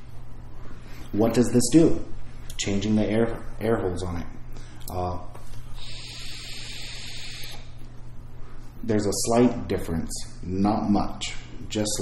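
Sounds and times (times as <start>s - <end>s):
vape drag hiss: 5.8s - 7.7s.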